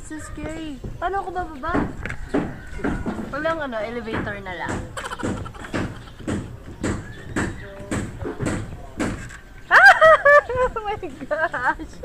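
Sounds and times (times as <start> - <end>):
footsteps on metal ladder rungs: 0.2 - 9.5.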